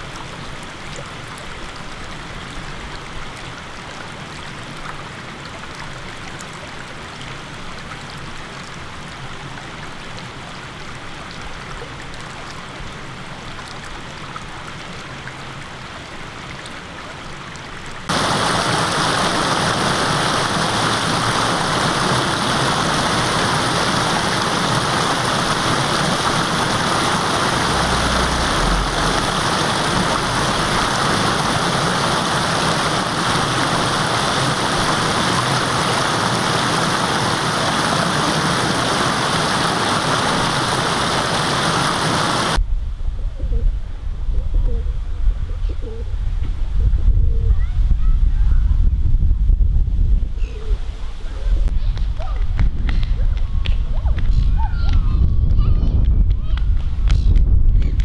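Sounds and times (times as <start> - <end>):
water pouring over a weir: 18.1 - 42.6
wind rumbling on microphone: 18.1 - 58.0.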